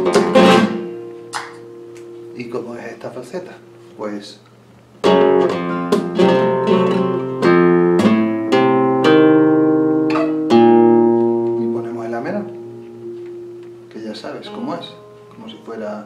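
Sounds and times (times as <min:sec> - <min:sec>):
flamenco guitar playing: 0:00.0 - 0:04.0, 0:04.9 - 0:16.0.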